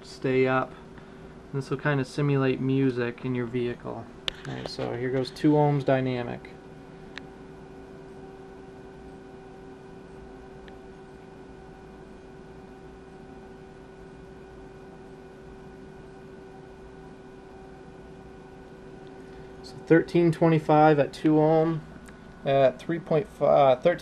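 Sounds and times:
electrical hum: 0.0s - 24.0s.

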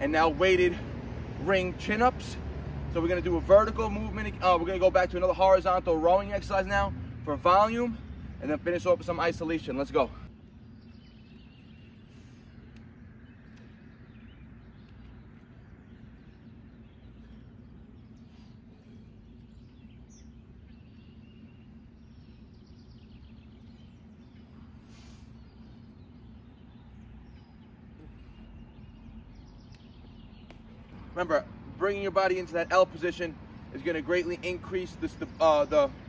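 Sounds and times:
low background rumble: 0.0s - 36.0s
faint bird chirps: 9.7s - 31.2s.

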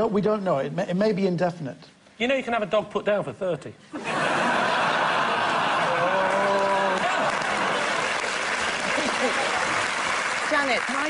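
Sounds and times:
audience laughing: 4.0s - 10.0s
audience applauding: 4.7s - 11.0s.

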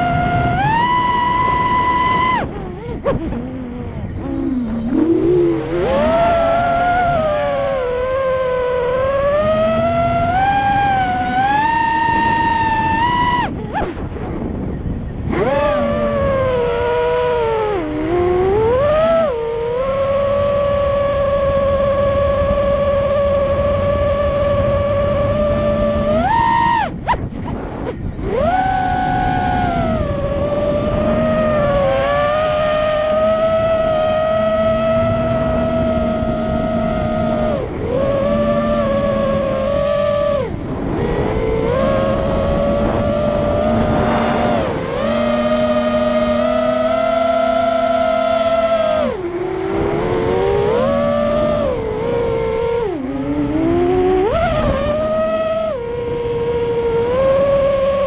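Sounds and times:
quadcopter motors whining: 0.0s - 58.0s.

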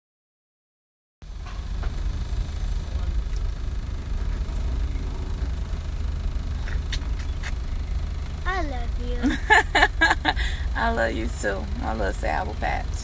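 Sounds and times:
car cabin rumble: 1.3s - 13.0s.

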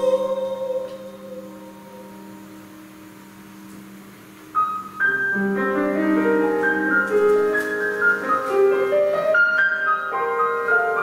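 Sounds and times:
piano playing: 0.0s - 11.0s.

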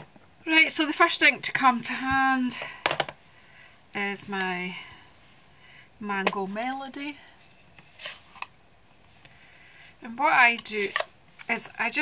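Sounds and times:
handling rustle: 7.3s - 9.3s.

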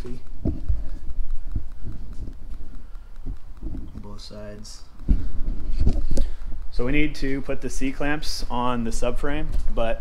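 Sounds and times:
footsteps on concrete: 0.0s - 9.9s
steady low hum: 0.0s - 10.0s.

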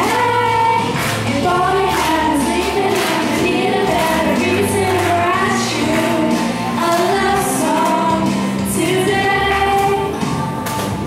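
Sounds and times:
girls singing a pop ballad: 0.0s - 11.0s
instrumental accompaniment: 0.0s - 11.0s.

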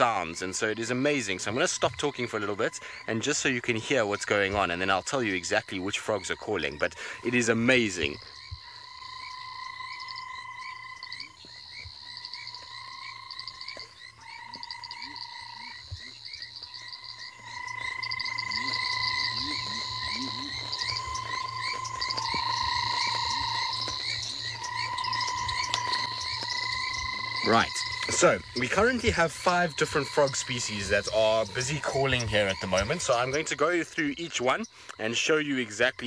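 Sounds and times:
frogs rising calls: 0.0s - 36.0s
frog whirring trill: 16.4s - 33.5s.

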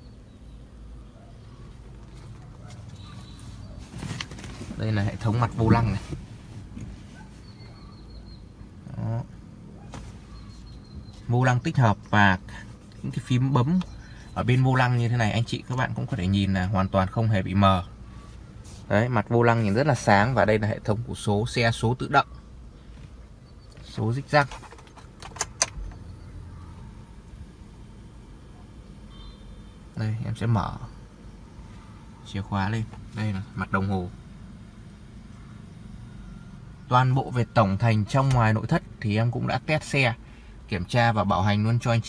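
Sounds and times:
low steady rumble: 0.0s - 42.0s
faint bird calls: 2.5s - 4.1s
car keys jangling: 24.4s - 25.8s
ignition switch clicking: 24.8s - 26.1s.

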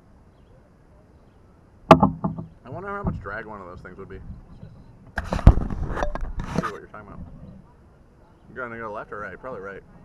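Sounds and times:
paddle knocking against canoe: 1.9s - 5.7s.

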